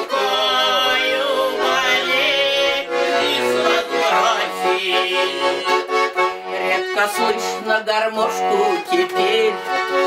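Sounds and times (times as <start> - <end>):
button accordion playing chords: 0.0 - 10.0.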